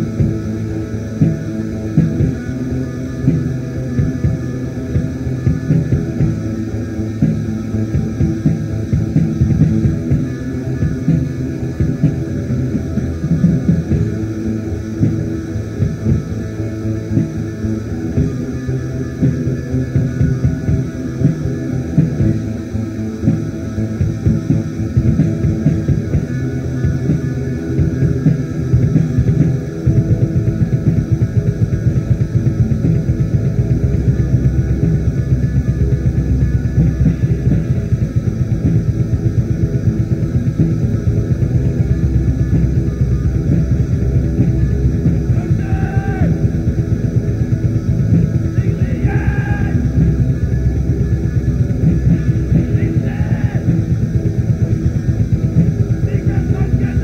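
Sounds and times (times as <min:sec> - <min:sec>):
murky black metal band: 0:00.0 - 0:57.0.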